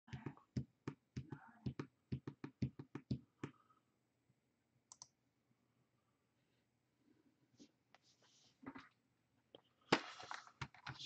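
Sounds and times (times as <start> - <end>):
faint clicks: 4.9 - 5.2.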